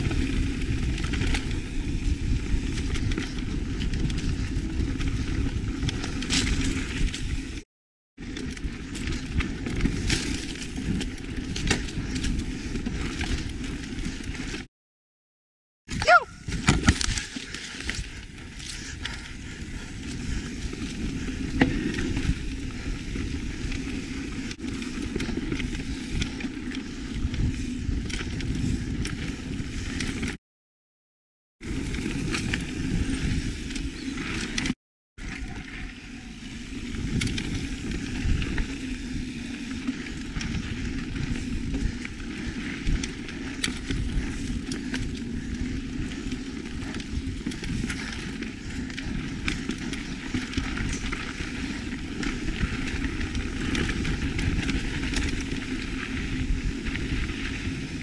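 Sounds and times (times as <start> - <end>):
bike rattling over bumps: 0.0 - 7.6, 8.2 - 14.7, 16.1 - 30.4, 31.6 - 58.0
knobby tyres rumbling on dirt: 0.0 - 7.6, 8.2 - 14.7, 16.4 - 30.4, 31.6 - 58.0.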